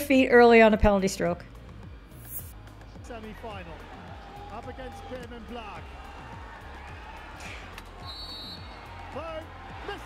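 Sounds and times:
faint music: 0.0s - 10.0s.

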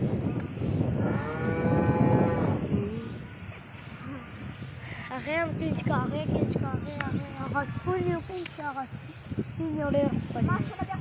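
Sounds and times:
cow mooing: 1.0s - 3.0s.

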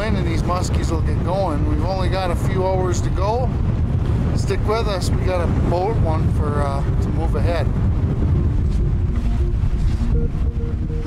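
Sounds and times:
choppy water: 0.0s - 11.0s
wind buffeting microphone: 0.0s - 11.0s
electronic music: 8.2s - 11.0s.

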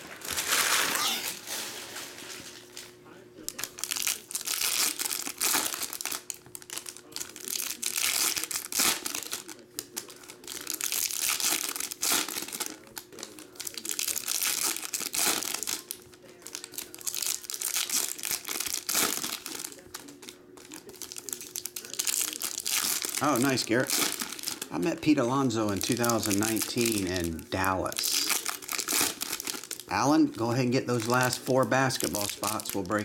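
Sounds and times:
foil wrappers crinkling and tearing: 0.0s - 33.0s.

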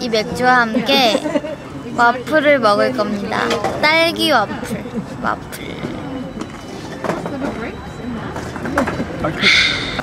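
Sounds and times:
indistinct background talk: 0.0s - 10.0s.

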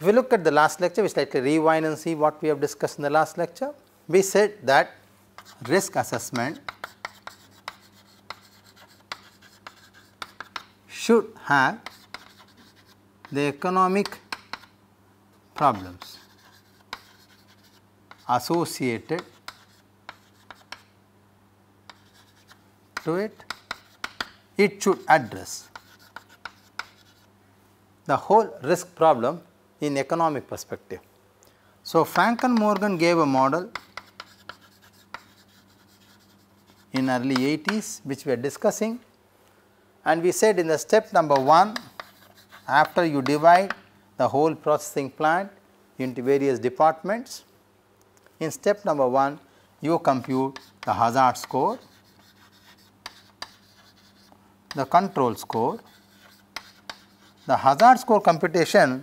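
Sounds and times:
chalk tapping on chalkboard: 5.4s - 10.8s, 11.8s - 13.4s, 14.0s - 14.8s, 15.6s - 21.0s, 21.9s - 27.3s, 32.2s - 37.9s, 41.2s - 43.8s, 50.0s - 58.1s.

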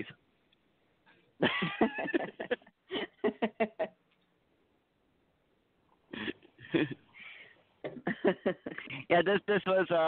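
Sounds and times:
man laughing: 1.4s - 3.9s, 6.1s - 7.1s, 8.0s - 9.1s.

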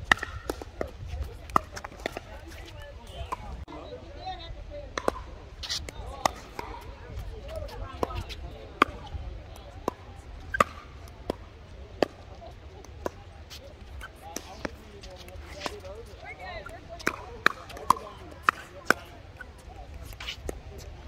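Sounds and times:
paddles striking pickleball: 0.0s - 3.5s, 5.0s - 20.9s.

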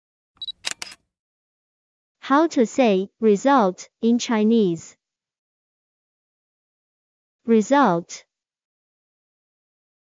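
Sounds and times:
quick sharp clicks: 0.4s - 1.0s.

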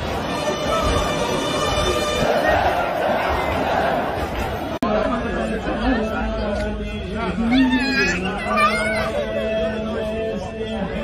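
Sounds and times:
people chattering: 0.0s - 11.0s
man's voice: 4.8s - 11.0s.

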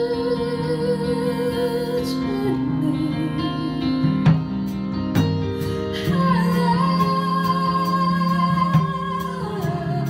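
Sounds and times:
band playing pop ballad: 0.0s - 10.0s.

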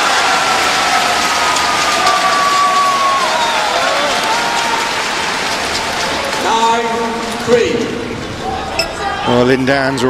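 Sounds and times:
crowd cheering and applauding: 0.0s - 6.7s.

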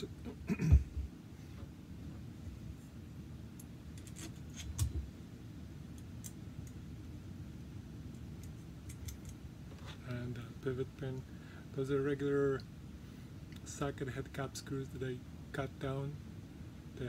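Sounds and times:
low steady hum: 0.0s - 17.0s
metal parts clicking and tapping: 8.1s - 9.4s.

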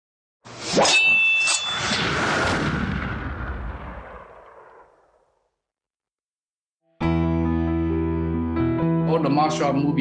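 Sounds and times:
deep explosion: 1.9s - 5.4s.

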